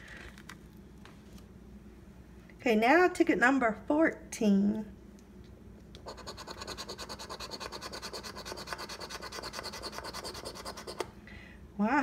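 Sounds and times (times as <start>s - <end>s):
coin scratching lottery ticket: 6.0s - 11.0s.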